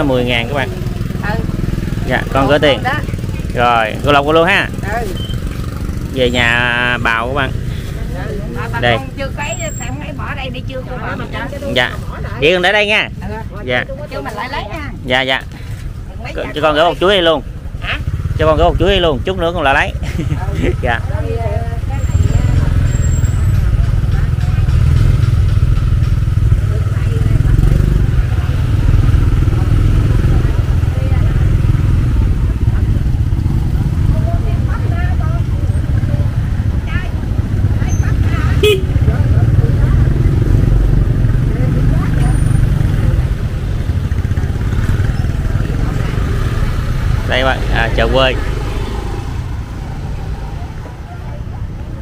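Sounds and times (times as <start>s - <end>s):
people's voices: 0.0s - 52.0s
scooters passing: 0.0s - 52.0s.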